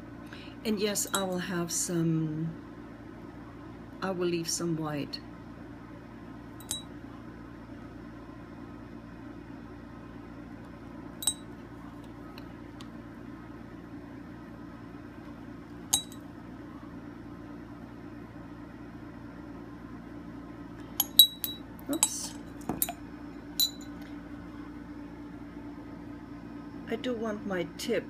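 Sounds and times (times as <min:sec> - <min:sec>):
steady low hum: 0:00.0 - 0:28.0
glass dropper clinking on glass: 0:06.6 - 0:06.9, 0:11.2 - 0:11.5, 0:15.9 - 0:16.2, 0:21.0 - 0:23.0, 0:23.6 - 0:24.0.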